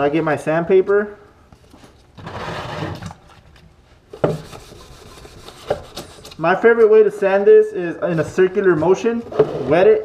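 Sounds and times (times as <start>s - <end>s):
faint hand sanding rubbing: 4.3s - 6.4s
sandpaper rasping: 4.4s - 6.4s.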